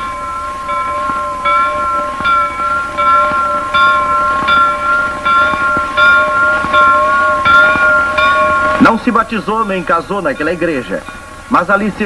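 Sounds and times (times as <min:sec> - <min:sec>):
church bell ringing: 0:00.0 - 0:12.0.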